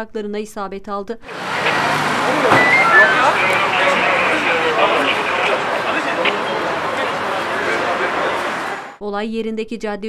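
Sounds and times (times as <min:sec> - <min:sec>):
traffic noise: 0:01.2 - 0:09.0
people talking over one another: 0:01.3 - 0:09.0.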